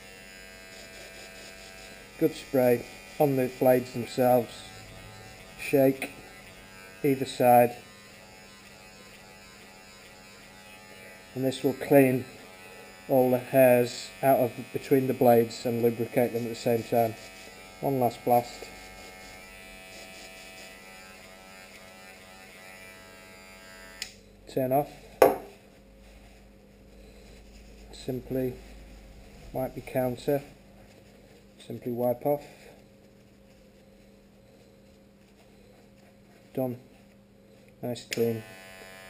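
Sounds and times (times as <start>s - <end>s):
electric hair clipper humming: 0.0s - 24.2s, 38.1s - 39.0s
aerosol can knocking on countertop: 25.2s - 25.5s.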